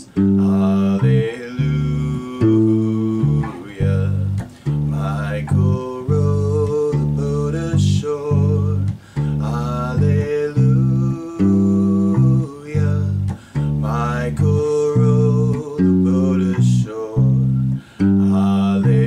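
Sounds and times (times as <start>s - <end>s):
electric bass guitar: 0.0s - 19.0s
guitar backing track: 0.0s - 19.0s.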